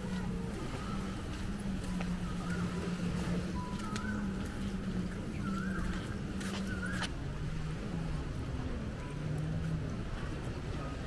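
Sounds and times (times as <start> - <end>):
faint distant voices: 0.0 - 11.0
wind and surf rumble: 0.0 - 11.0.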